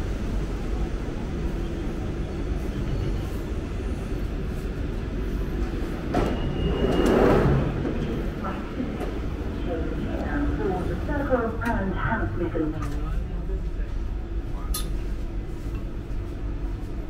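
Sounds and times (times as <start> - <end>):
train rumbling to a stop: 0.0 - 17.0.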